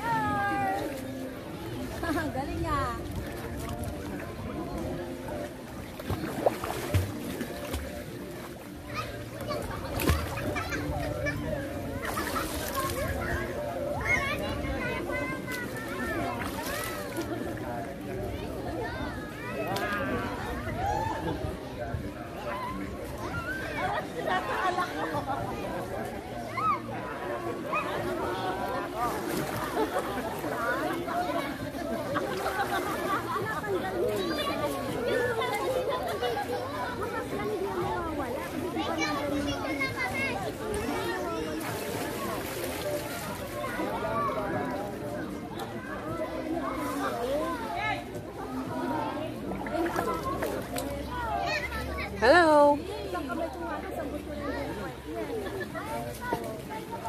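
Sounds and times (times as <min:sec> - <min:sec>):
water splashing: 0:00.0 - 0:18.4, 0:27.7 - 0:44.5
children and adults chattering: 0:00.0 - 0:57.0.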